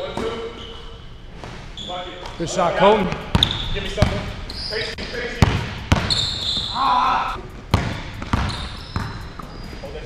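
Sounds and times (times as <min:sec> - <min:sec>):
sneakers squeaking on floor: 0:00.0 - 0:07.0, 0:07.6 - 0:10.0.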